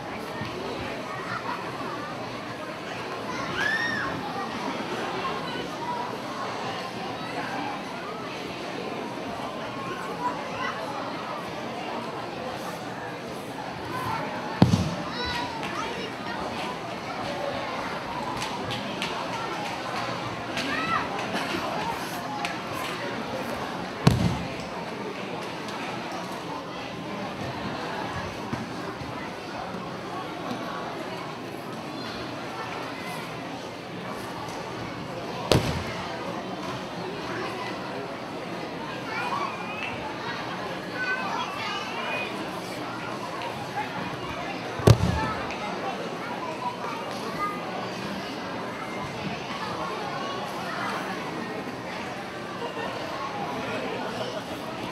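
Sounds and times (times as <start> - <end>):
crowd chatter with children: 0.0 - 54.9.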